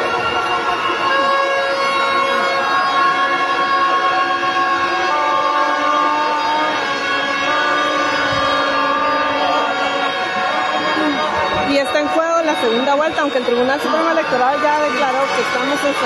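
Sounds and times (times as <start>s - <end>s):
horns sounding long notes: 0.0s - 16.0s.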